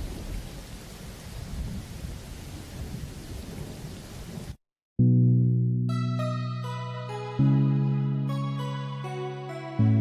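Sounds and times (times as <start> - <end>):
low rumble of thunder: 0.0 - 4.6.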